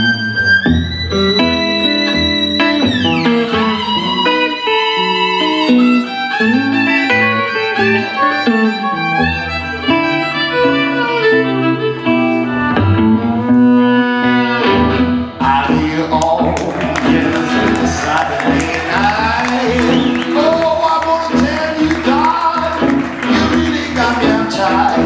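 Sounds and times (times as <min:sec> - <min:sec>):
bowed violin melody: 0:00.0 - 0:15.4
electric guitar backing: 0:00.0 - 0:25.0.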